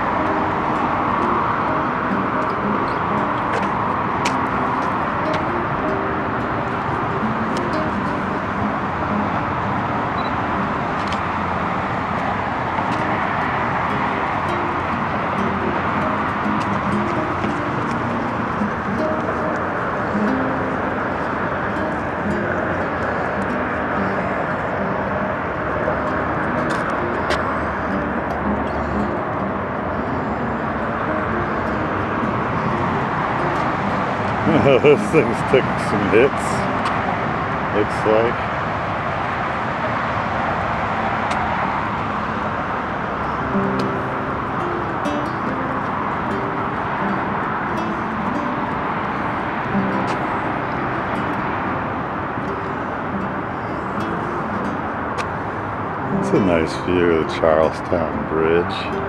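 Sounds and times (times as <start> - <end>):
plucked acoustic guitar music: 0.0 - 59.0
road traffic hiss: 0.0 - 59.0.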